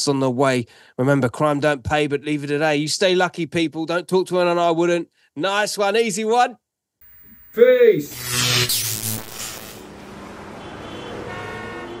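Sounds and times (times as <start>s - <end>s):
horn-like tone: 10.6s - 12.0s.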